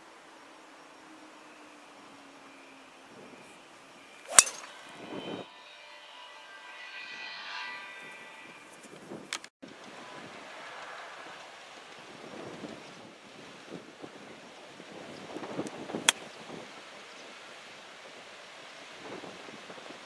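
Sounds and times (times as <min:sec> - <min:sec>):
wind: 0:00.0 - 0:20.0
golf driver striking ball: 0:04.3 - 0:04.9.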